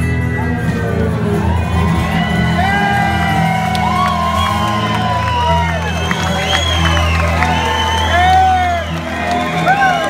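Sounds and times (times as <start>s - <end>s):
audience whooping and shouting: 1.2s - 10.0s.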